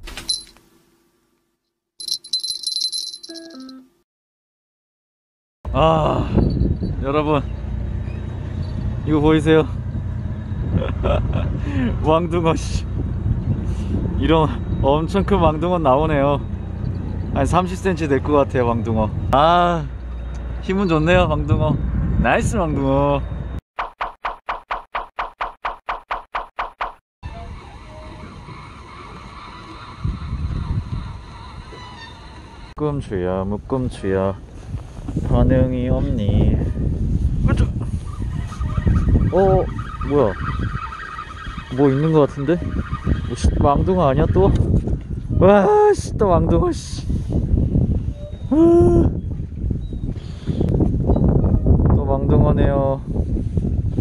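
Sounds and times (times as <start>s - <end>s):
small bell jingling rapidly: 2.0s - 3.8s
low rumble: 5.7s - 23.6s
outdoor background noise: 27.2s - 43.3s.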